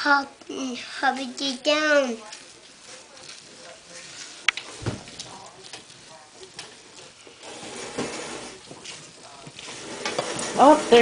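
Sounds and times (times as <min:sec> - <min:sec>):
eggs hissing in pan: 0:00.0 - 0:11.0
spatula scraping frying pan: 0:00.7 - 0:11.0.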